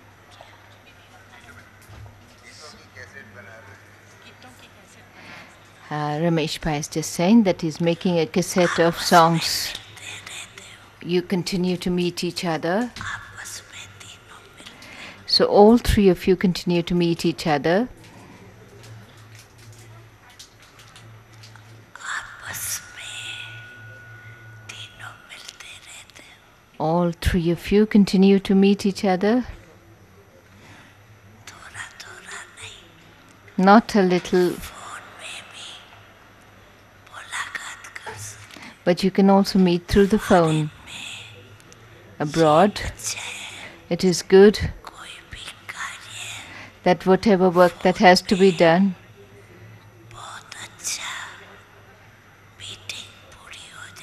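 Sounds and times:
low hiss: 0:00.0 - 0:54.0
low steady hum: 0:00.0 - 0:54.0
hushed whispering talk: 0:00.1 - 0:05.9, 0:08.0 - 0:15.3, 0:17.2 - 0:26.8, 0:29.4 - 0:38.9, 0:39.8 - 0:54.0
thin steady tone: 0:02.4 - 0:51.8
low hum: 0:05.7 - 0:29.7
person whispering: 0:08.5 - 0:11.1, 0:12.8 - 0:15.3, 0:21.9 - 0:24.0, 0:24.7 - 0:26.5, 0:31.4 - 0:33.0, 0:33.8 - 0:36.2, 0:40.0 - 0:41.6, 0:42.2 - 0:43.9, 0:50.1 - 0:51.8, 0:52.6 - 0:54.0.

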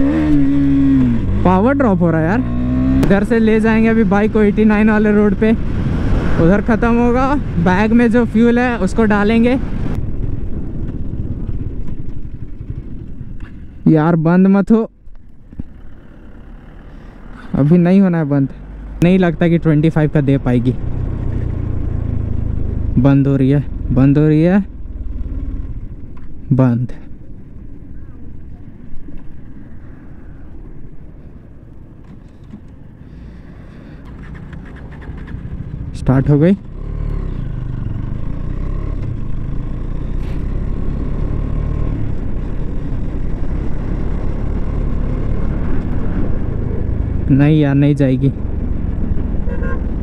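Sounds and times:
low wind: 0:00.0 - 0:50.0
motorcycle engine low rumble: 0:00.0 - 0:50.0.

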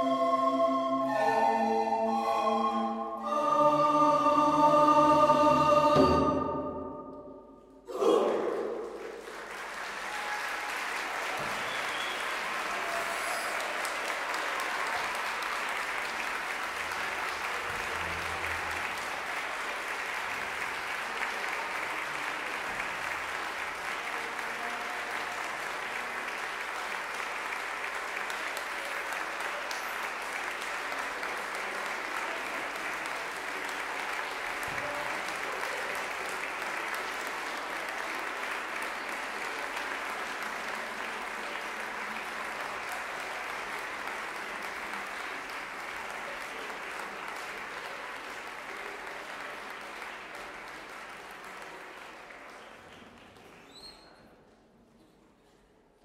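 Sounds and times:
audience applauding: 0:07.9 - 0:54.3.

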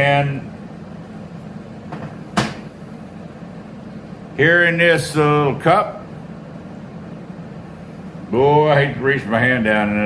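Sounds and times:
steady low hum: 0:00.0 - 0:10.0
sharp knock on workbench: 0:01.9 - 0:02.7.

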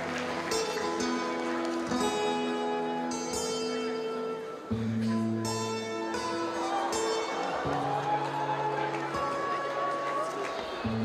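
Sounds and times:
fingerstyle acoustic guitar: 0:00.0 - 0:11.0.

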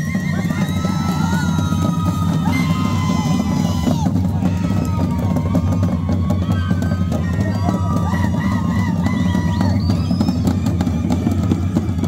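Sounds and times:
bass drums beating: 0:00.0 - 0:12.0.

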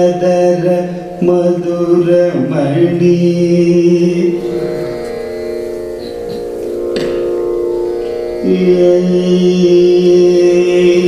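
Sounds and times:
man singing long note: 0:00.0 - 0:05.0, 0:08.4 - 0:11.0
tanpura drone: 0:00.0 - 0:11.0.

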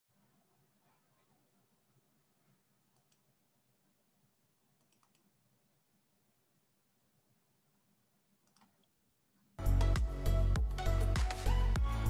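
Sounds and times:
faint room hum: 0:00.1 - 0:09.6
faint clicks: 0:02.9 - 0:03.3, 0:04.8 - 0:05.3, 0:08.4 - 0:08.9.

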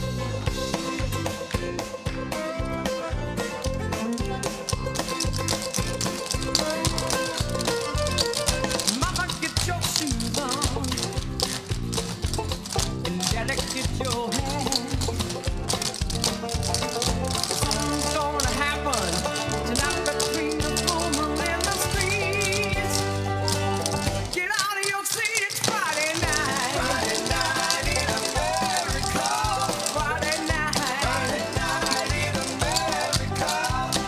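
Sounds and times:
upbeat recorded music: 0:00.0 - 0:34.0.

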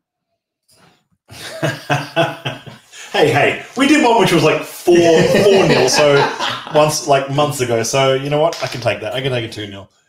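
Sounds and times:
man laughing: 0:01.3 - 0:03.6, 0:04.9 - 0:07.2.

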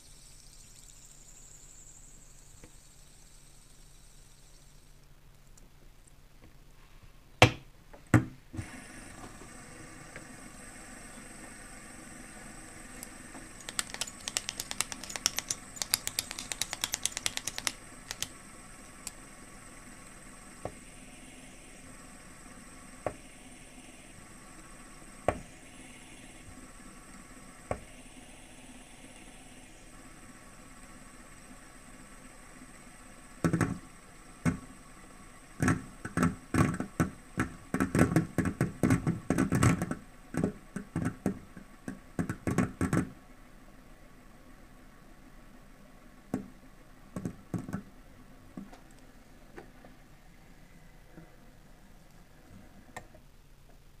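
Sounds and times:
fidget spinner clicking: 0:12.9 - 0:19.3.

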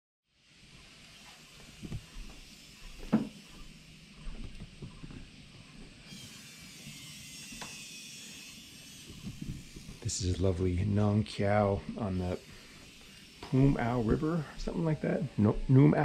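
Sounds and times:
steady high hiss: 0:00.3 - 0:16.0.

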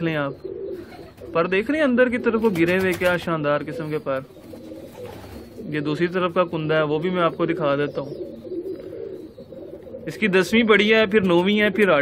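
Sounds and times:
pigeons cooing softly: 0:00.0 - 0:12.0.

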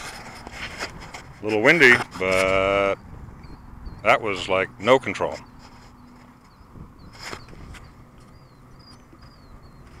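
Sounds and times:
wind on microphone: 0:00.0 - 0:10.0
high bird chirps: 0:05.4 - 0:10.0.

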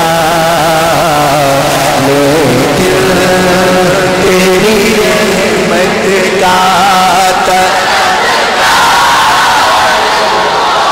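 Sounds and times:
man chanting in held notes: 0:00.0 - 0:07.9.

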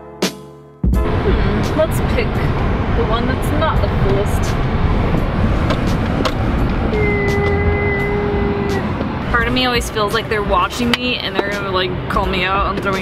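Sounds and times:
engine and tyres rumbling: 0:00.9 - 0:13.0
high-pitched tone: 0:06.6 - 0:09.9.

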